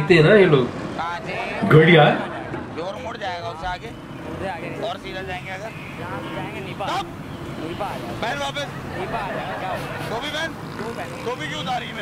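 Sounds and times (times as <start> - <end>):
men talking: 0.0 - 12.0
traffic rumble: 0.0 - 12.0.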